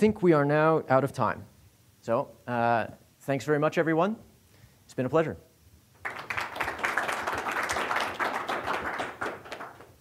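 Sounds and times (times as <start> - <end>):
audience applauding: 6.0 - 10.0.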